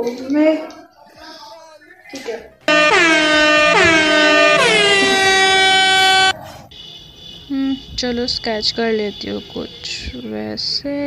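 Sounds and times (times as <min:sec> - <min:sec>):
horn blasts sliding down in pitch: 0:02.7 - 0:06.3.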